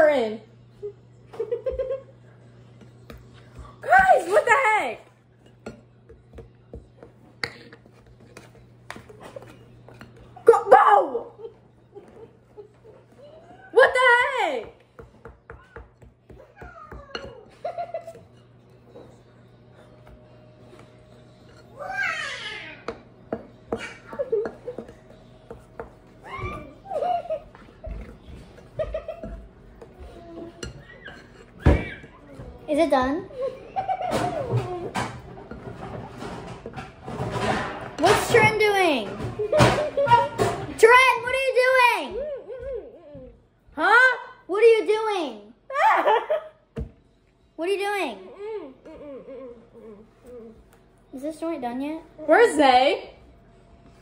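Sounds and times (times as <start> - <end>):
girls giggling and laughing: 0.8 - 2.3, 26.3 - 29.5, 33.3 - 34.9
girl squealing: 26.2 - 26.9
spatulas scraping glass bowl: 28.4 - 32.1.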